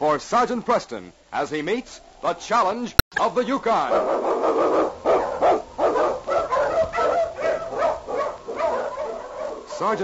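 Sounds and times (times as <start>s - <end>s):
huskies barking and yelping: 3.8s - 10.0s.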